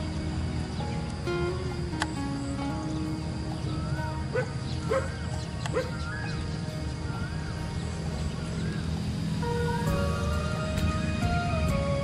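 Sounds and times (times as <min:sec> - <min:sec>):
background music: 0:00.0 - 0:12.0
dog barking: 0:04.3 - 0:06.0.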